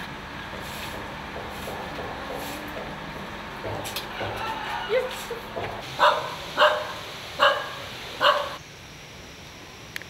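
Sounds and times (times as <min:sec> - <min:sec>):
dog barking: 0:06.0 - 0:08.6.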